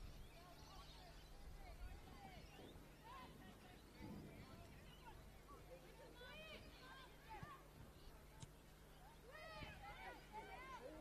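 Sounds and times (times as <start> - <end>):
distant shouts of footballers: 1.7 - 8.2, 9.0 - 11.0.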